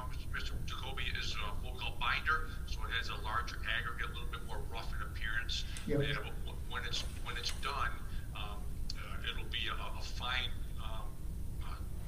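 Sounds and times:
low room hum: 0:00.0 - 0:12.0
person talking: 0:05.7 - 0:07.8.

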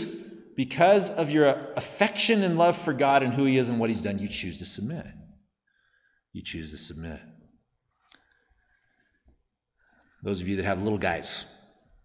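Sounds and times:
man speaking: 0:00.0 - 0:05.4, 0:06.3 - 0:07.4, 0:10.2 - 0:11.6.

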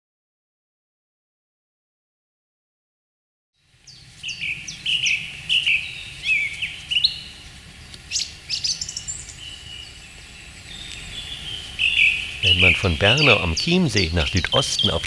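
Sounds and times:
songbirds chirping and whistling: 0:03.6 - 0:15.0.

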